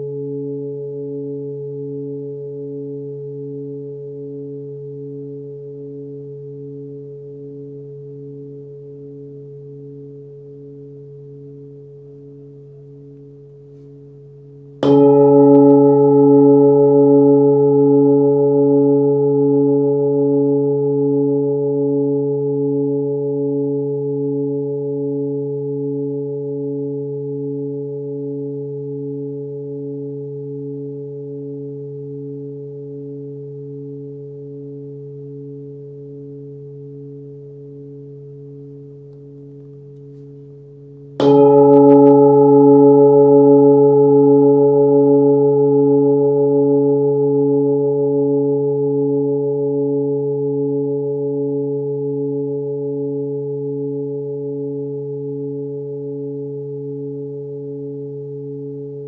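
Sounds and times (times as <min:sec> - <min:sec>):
singing bowl ringing: 0:00.0 - 0:59.0.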